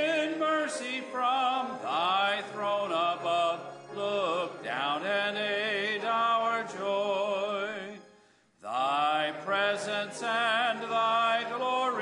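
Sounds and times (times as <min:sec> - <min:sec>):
man singing a hymn: 0:00.0 - 0:12.0.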